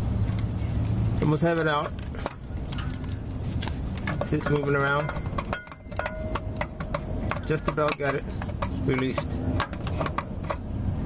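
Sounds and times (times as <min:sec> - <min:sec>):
low steady rumble: 0:00.0 - 0:11.0
tool clicks and taps: 0:01.2 - 0:10.6.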